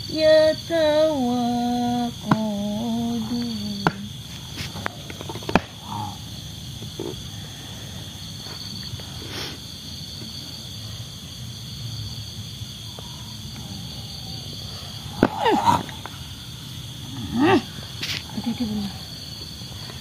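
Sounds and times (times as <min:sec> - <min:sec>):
night insects chirring: 0:00.0 - 0:20.0
person growling and crying out: 0:15.2 - 0:16.1.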